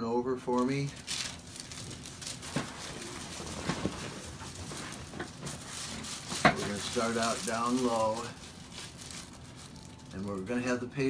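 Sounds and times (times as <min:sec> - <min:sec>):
rustling of paper and body: 0:00.4 - 0:10.8.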